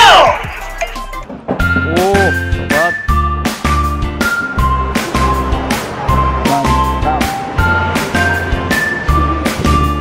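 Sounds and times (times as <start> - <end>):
electronic music with heavy bass beat: 0.0 - 1.3.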